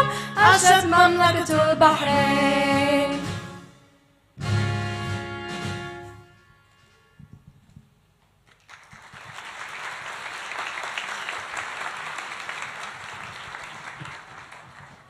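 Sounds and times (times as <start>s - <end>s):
audience applause: 8.5s - 15.0s.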